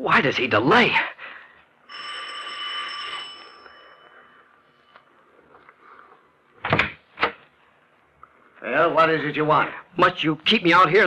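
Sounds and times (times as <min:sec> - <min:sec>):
doorbell ringing: 0:01.9 - 0:04.4.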